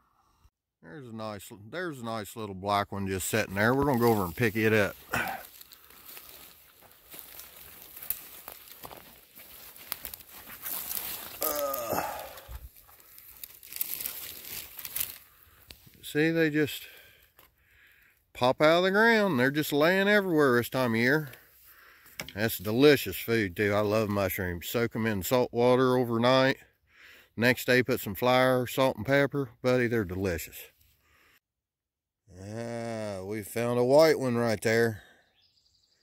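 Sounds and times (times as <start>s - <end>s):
man speaking: 0.8s - 5.5s, 16.0s - 17.0s, 18.4s - 21.3s, 22.4s - 26.6s, 27.4s - 30.7s, 32.4s - 35.0s
dry leaves rustling and crackling: 3.7s - 15.4s.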